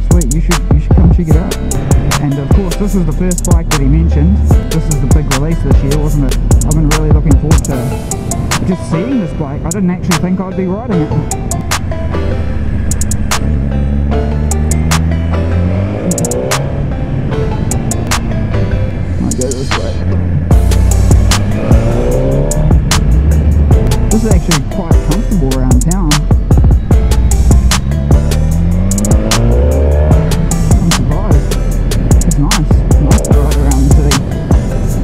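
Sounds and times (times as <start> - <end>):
music playing: 0.0 - 35.0
motorcycle engine accelerating: 11.5 - 18.7, 19.4 - 35.0.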